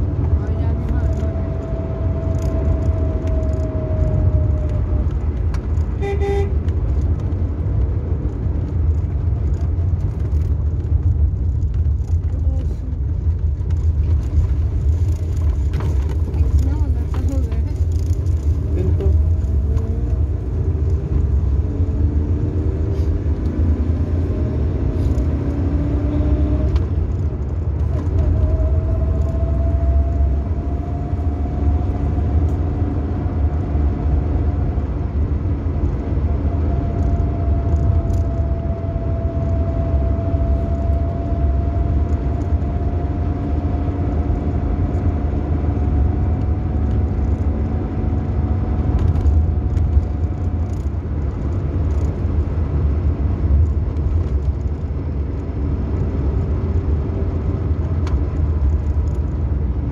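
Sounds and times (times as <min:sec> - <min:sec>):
vehicle engine with road rumble: 0:00.0 - 0:59.9
car horn toot: 0:06.0 - 0:06.6.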